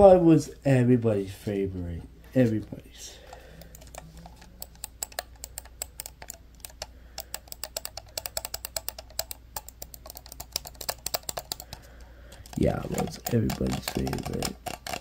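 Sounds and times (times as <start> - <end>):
computer mouse clicking: 3.2 - 15.0.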